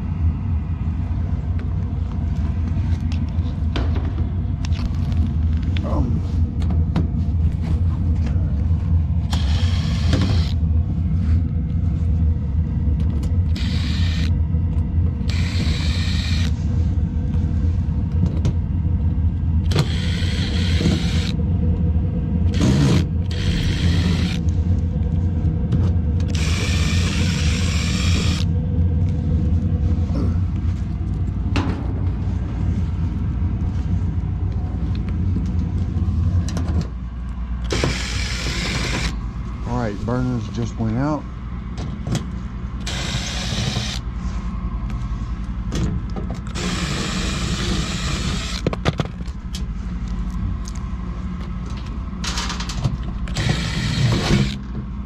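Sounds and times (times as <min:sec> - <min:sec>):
low furnace hum: 0:00.0 - 0:55.0
impact driver bursts: 0:22.5 - 0:24.4, 0:37.7 - 0:39.1, 0:53.3 - 0:54.6.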